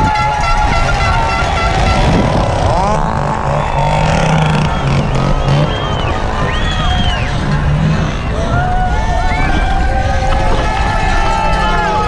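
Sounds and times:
spectators shouting: 0:00.0 - 0:12.0
wind buffeting camera: 0:00.0 - 0:12.0.

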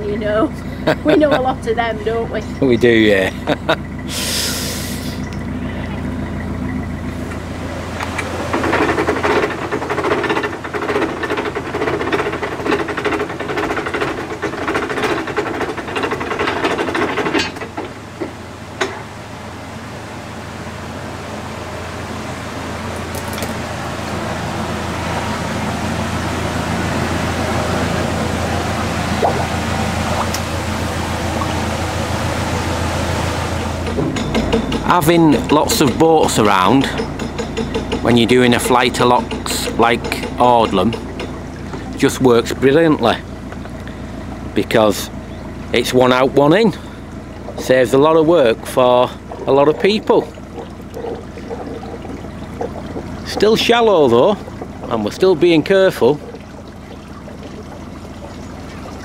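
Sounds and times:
diesel engine throbbing: 0:00.0 - 0:59.0.

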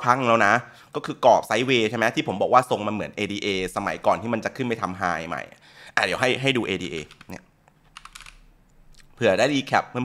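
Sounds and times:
keyboard key clicks: 0:07.0 - 0:08.4.

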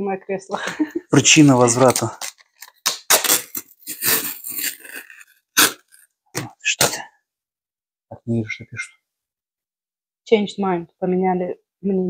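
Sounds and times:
label and tape tearing off cardboard: 0:01.4 - 0:06.1.

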